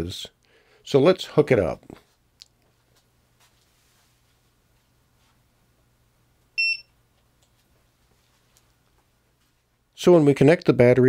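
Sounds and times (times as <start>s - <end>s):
battery charger beep: 6.6s - 6.9s.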